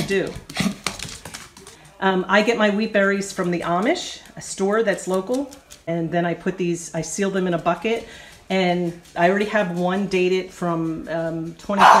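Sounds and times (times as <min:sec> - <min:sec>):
woman speaking: 0:00.0 - 0:00.5, 0:02.0 - 0:12.0.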